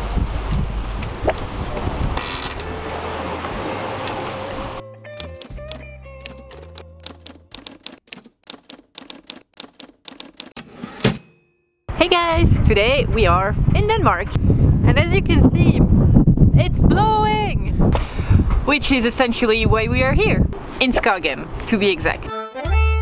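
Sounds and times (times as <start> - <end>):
wind and sea noise: 0.0 - 4.8, 11.9 - 22.2
low music notes: 2.6 - 7.5, 22.2 - 23.0
typewriter key clicks: 5.2 - 10.6
typewriter bell ding: 10.6 - 11.9.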